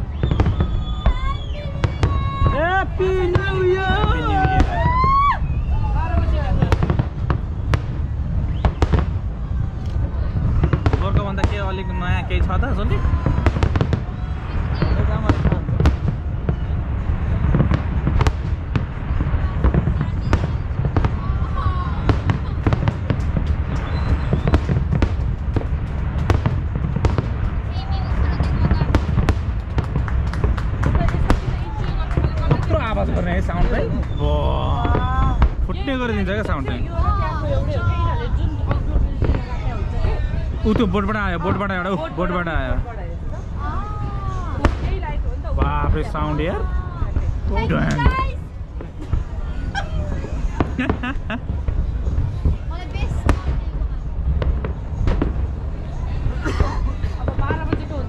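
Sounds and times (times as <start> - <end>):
fireworks bangs and crackles: 0.0 - 58.0
rumble of fireworks bursts: 0.0 - 58.0.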